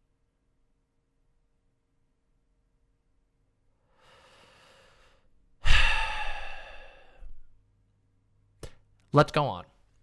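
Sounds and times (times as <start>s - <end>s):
person breathing in: 3.8s - 7.5s
heavy sigh into microphone: 5.6s - 7.4s.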